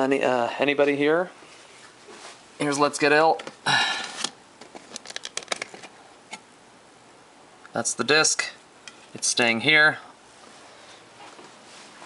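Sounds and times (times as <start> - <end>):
plastic cd case clicks: 4.2 - 6.4.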